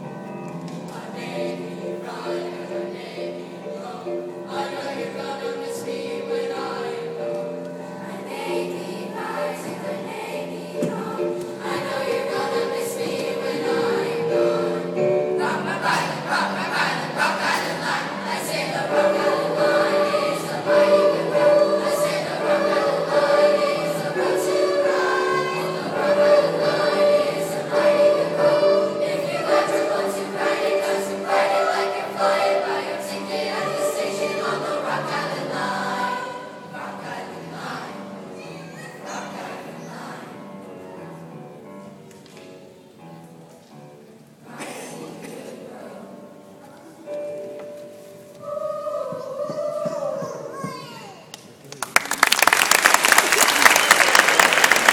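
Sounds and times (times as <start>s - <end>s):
children's choir singing: 0.0s - 42.8s, 44.4s - 51.1s, 52.9s - 54.9s.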